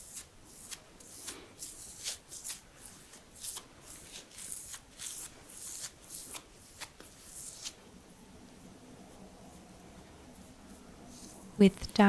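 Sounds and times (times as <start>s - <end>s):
brush swishing through beard: 9.1s - 11.5s.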